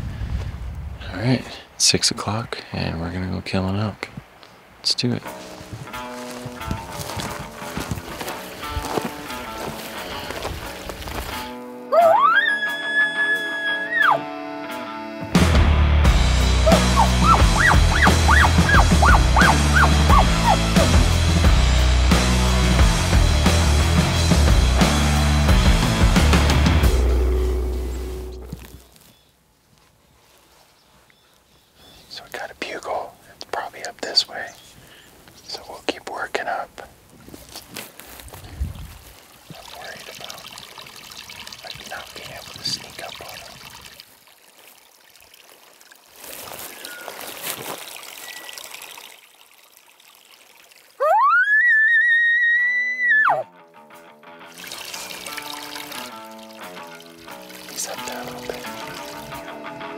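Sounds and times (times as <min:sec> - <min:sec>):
music: 0:05.2 - 0:28.6, 0:52.8 - 0:59.9
soft whispers: 0:32.0 - 0:37.0, 0:39.5 - 0:40.6, 0:41.6 - 0:43.7.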